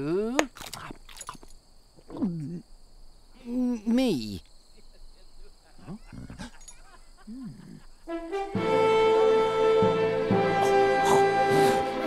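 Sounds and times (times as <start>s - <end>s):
low animal grunts: 5.9s - 6.6s, 7.3s - 7.9s
orchestral film score: 8.1s - 12.0s.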